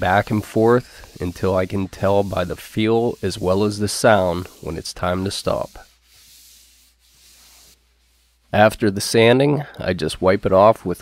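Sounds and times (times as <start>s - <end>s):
wet sanding wood by hand: 0.0s - 8.5s.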